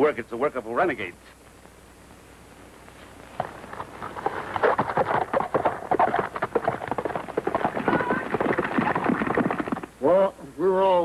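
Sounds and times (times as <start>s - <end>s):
hooves clattering on rocks: 3.4s - 9.9s.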